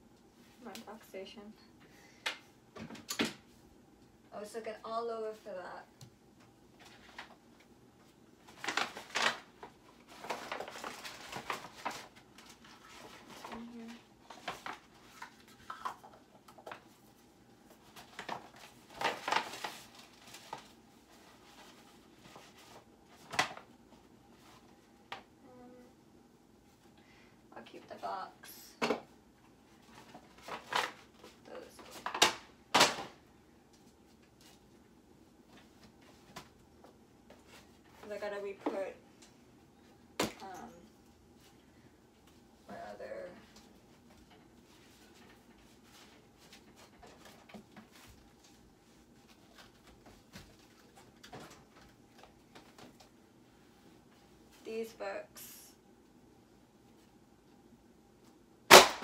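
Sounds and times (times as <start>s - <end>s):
rustling of objects: 1.6s - 25.4s, 26.6s - 55.2s.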